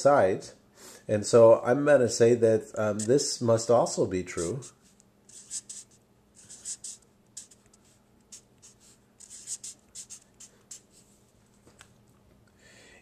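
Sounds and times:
marker scratching on paper: 4.3s - 11.1s.

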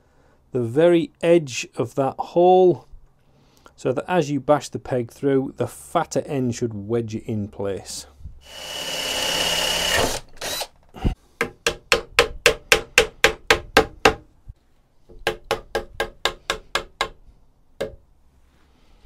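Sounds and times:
mallet knocking wooden peg: 15.1s - 17.2s, 17.8s - 18.0s.

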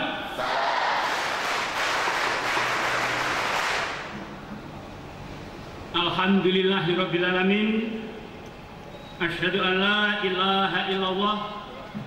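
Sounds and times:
large crowd answering together: 0.3s - 1.4s.

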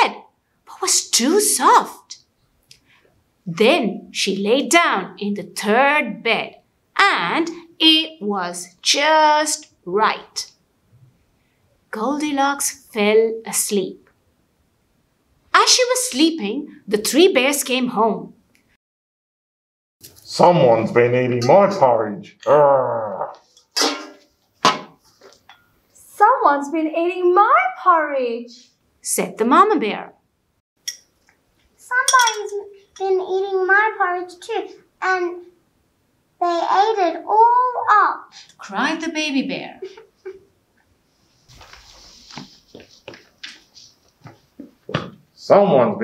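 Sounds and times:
metal spoon clattering in bowl: 32.1s - 32.5s.

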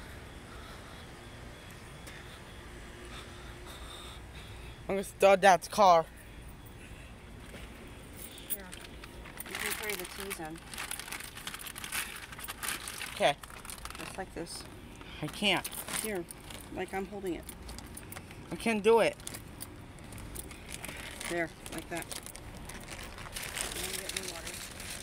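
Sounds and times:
plastic bag crinkling: 8.2s - 25.0s.

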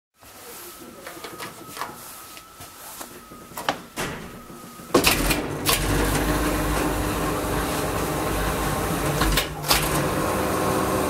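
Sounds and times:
lift motor humming: 0.5s - 11.0s.

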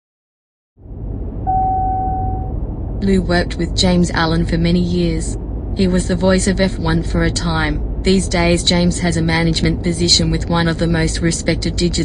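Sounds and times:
steady tone: 0.8s - 9.9s
vehicle rumble: 0.8s - 12.0s.

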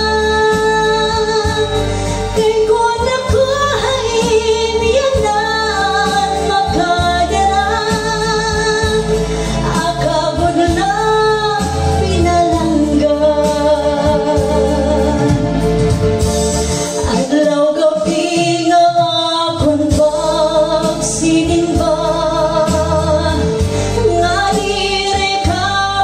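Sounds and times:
instrumental backing track: 0.0s - 26.0s
woman singing into microphone: 0.0s - 26.0s.

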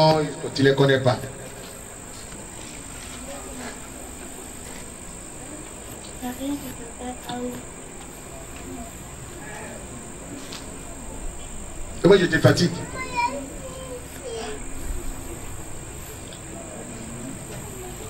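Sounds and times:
distant voices: 0.0s - 18.0s.

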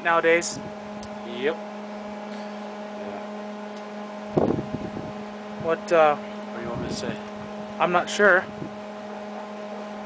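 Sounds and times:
loud rough noise: 0.0s - 10.0s
motor humming: 0.0s - 10.0s.

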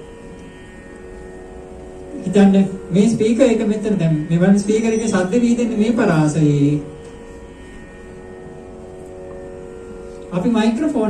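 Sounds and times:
steady drone of held pitches: 0.0s - 11.0s.

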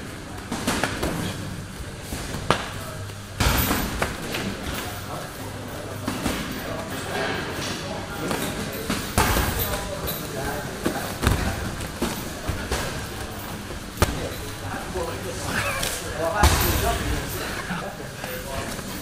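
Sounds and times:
feet and bodies on padded mat: 0.0s - 19.0s
voices: 0.0s - 19.0s
gloved strikes and kicks landing: 10.8s - 14.6s.

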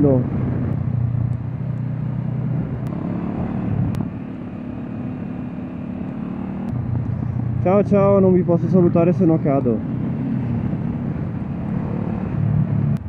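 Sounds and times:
motorcycle engine cruising: 0.0s - 13.0s.

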